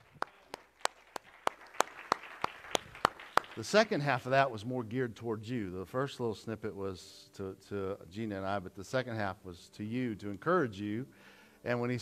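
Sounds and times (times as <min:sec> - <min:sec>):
faint applause: 0:00.0 - 0:03.8
people clapping hands: 0:00.0 - 0:04.2.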